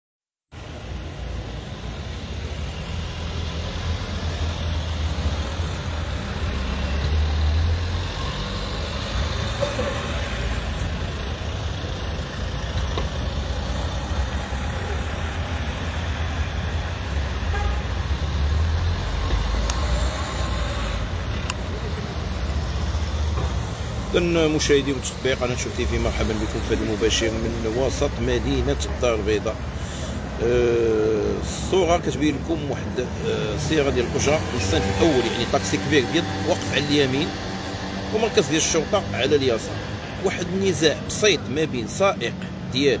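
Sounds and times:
cars passing: 0.5 - 43.0
low rumble of engines and tyres: 0.5 - 43.0.

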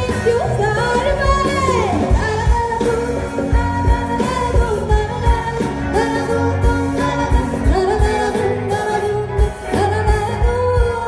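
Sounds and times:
electric guitar: 0.0 - 11.0.

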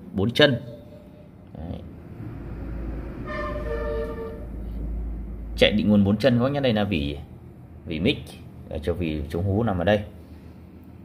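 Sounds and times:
heavy vehicle rumble: 1.8 - 7.7
vehicle horn honking: 3.2 - 4.8.

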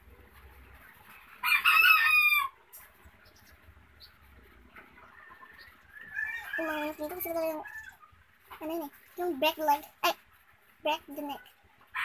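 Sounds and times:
rooster crowing: 1.4 - 2.6, 5.1 - 8.0.

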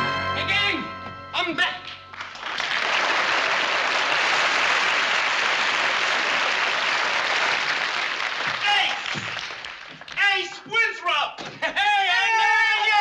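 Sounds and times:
studio audience applauding: 1.8 - 10.5.

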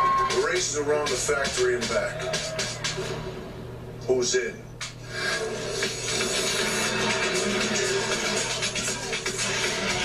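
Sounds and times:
trailer music: 0.0 - 3.8, 4.9 - 10.0.

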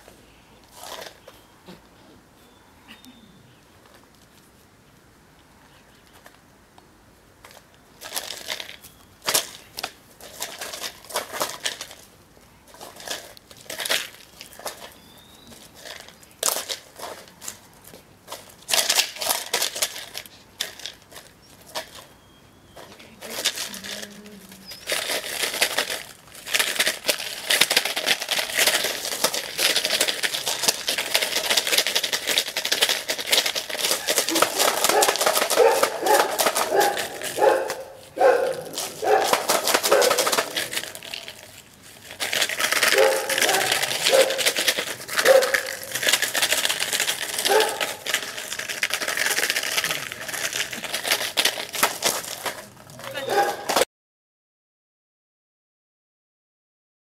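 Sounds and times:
plastic bottle crinkling: 0.0 - 1.5, 7.4 - 53.8.

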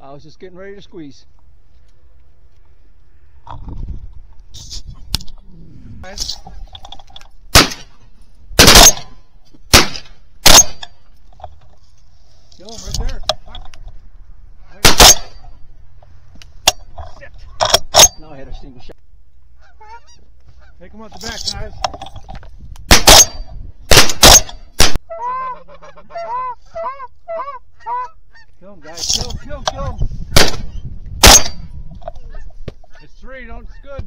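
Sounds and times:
shotgun firing: 7.5 - 8.0, 8.6 - 10.8, 14.8 - 15.4, 22.9 - 25.0, 30.4 - 31.6
goose honks: 19.6 - 20.8, 25.1 - 28.6.

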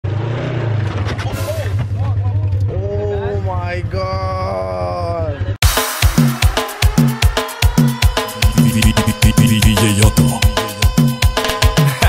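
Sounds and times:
person calling out: 8.4 - 10.6.

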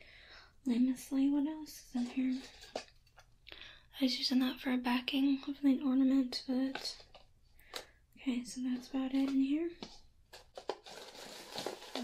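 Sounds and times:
plastic crinkling and rustling: 2.0 - 3.3, 9.1 - 12.0.

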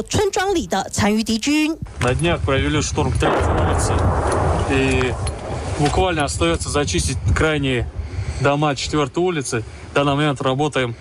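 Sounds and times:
men speaking: 1.9 - 11.0.

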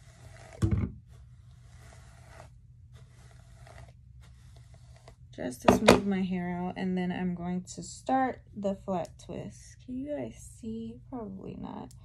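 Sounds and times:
brush scratching through hair: 0.0 - 5.6.

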